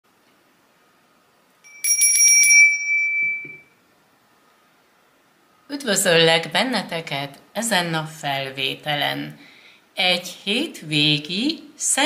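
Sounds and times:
small bell ringing: 0:01.6 - 0:03.7.

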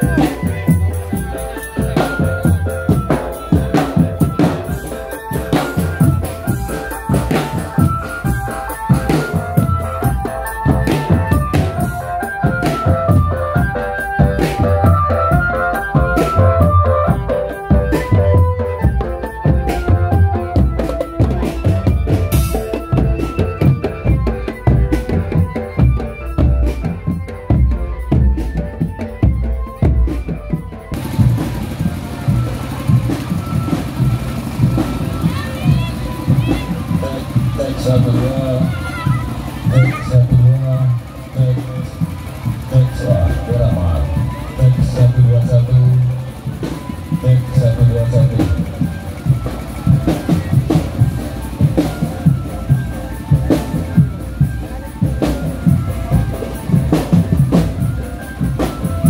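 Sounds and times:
marching drum band: 0:00.0 - 0:59.0
street noise: 0:00.0 - 0:59.0.

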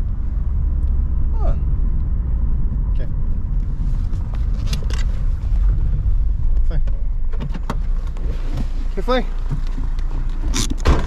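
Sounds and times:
car engine rumble from inside: 0:00.0 - 0:11.0.

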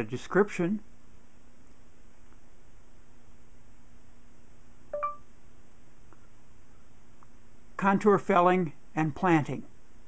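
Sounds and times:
short electronic chime: 0:05.0 - 0:05.2.

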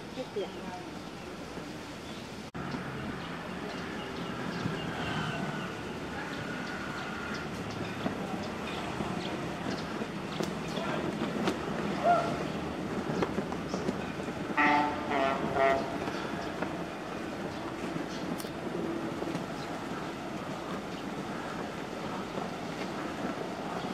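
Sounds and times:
outdoor background noise: 0:00.0 - 0:23.9.

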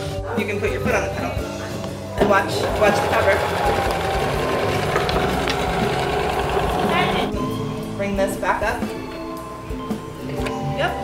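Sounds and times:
sewing machine stitching: 0:02.2 - 0:07.3.

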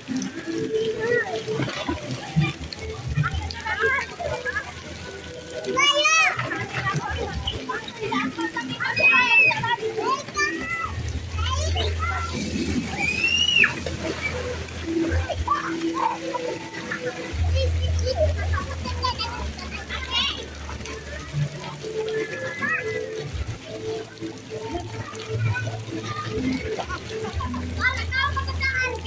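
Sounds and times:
background music: 0:00.0 - 0:29.0
children calling and shouting: 0:00.0 - 0:29.0
water splashing and running: 0:00.0 - 0:29.0.

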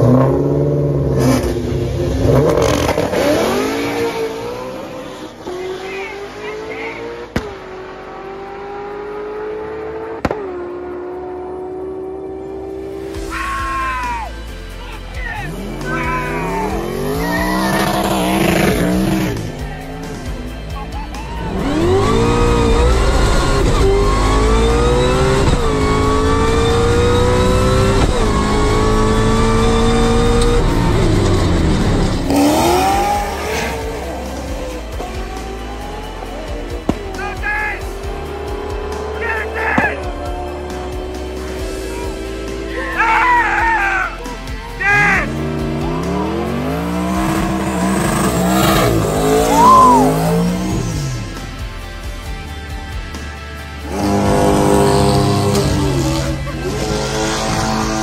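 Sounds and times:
car engine at full throttle: 0:00.0 - 0:13.3, 0:15.4 - 0:43.0, 0:44.1 - 0:58.0.

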